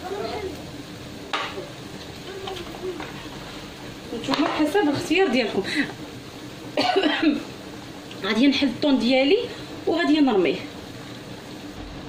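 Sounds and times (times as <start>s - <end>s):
woman coughing: 6.8s - 7.4s.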